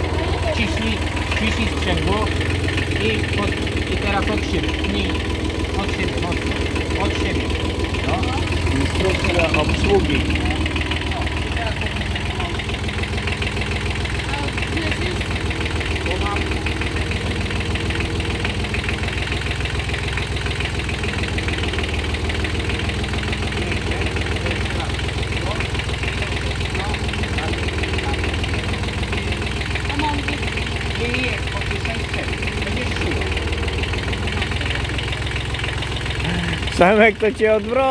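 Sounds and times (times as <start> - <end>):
diesel tractor engine idling: 0.0 - 37.9.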